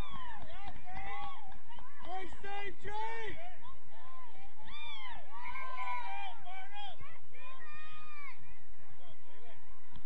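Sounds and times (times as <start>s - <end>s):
people shouting and calling out: 0.0s - 10.0s.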